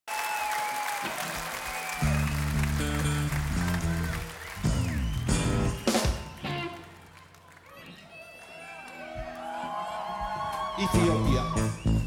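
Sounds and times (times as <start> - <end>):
crowd cheering and whistling: 0.1 - 12.0
band playing low electric notes: 2.0 - 7.1.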